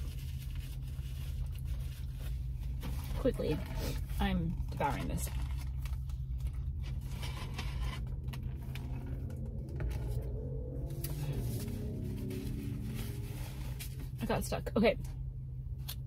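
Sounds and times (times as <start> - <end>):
vehicle engine idling: 1.8 - 15.8
faint wavering hum: 5.4 - 15.8.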